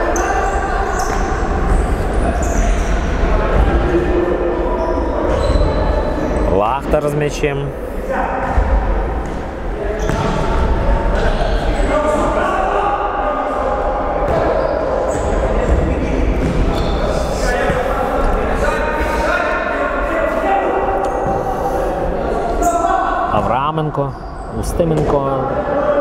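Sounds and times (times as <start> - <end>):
voices calling out in hall: 0.0 - 26.0.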